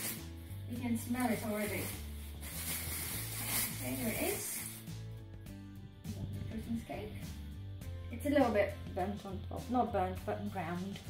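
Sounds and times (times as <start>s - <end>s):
background music with bass line: 0.0s - 11.0s
aluminium foil crinkling: 0.9s - 4.9s.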